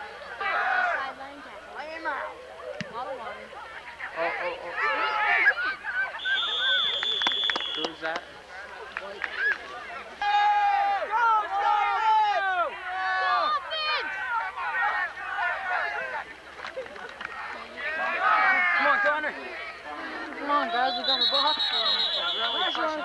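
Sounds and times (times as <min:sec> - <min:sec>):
spectators yelling and cheering: 0:00.0 - 0:23.0
referee whistle blast: 0:06.2 - 0:08.0, 0:20.7 - 0:23.0.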